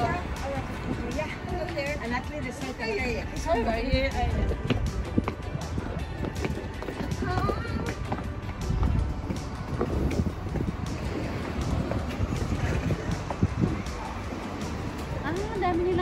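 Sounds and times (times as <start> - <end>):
background music: 0.0 - 16.0
footsteps on stone pavement: 0.0 - 16.0
wind rumbling on microphone: 0.0 - 16.0.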